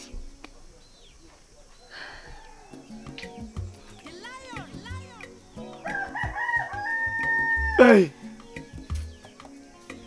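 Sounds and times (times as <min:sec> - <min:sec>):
rooster crowing: 0:02.0 - 0:03.0, 0:05.8 - 0:08.4.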